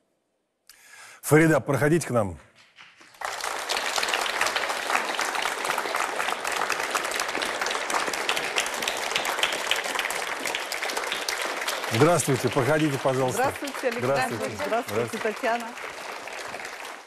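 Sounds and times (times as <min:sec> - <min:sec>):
audience applauding: 0:02.8 - 0:17.0.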